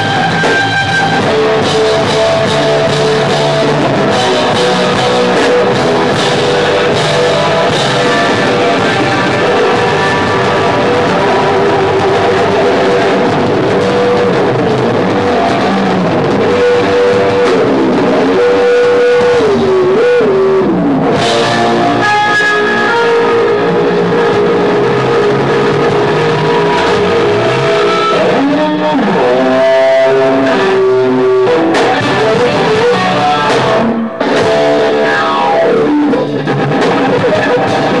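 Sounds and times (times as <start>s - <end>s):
bass guitar: 0.0s - 38.0s
electric guitar: 0.0s - 38.0s
live rock music: 0.0s - 38.0s.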